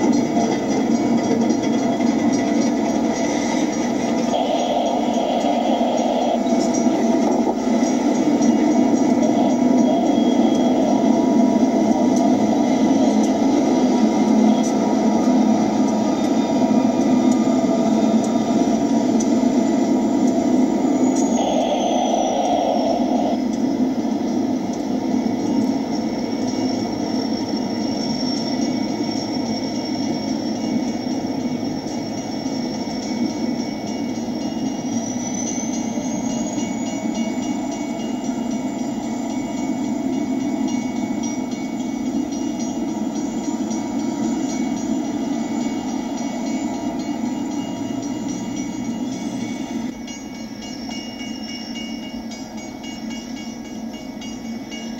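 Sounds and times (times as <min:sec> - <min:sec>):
train rolling rumble: 0:00.0 - 0:54.9
high wheel squeal: 0:08.5 - 0:11.7, 0:19.6 - 0:23.5, 0:26.0 - 0:33.5, 0:34.3 - 0:39.3.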